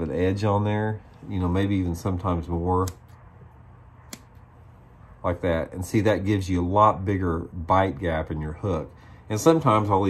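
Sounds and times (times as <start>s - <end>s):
sharp cutting click: 2.8s - 3.2s, 4.0s - 4.4s.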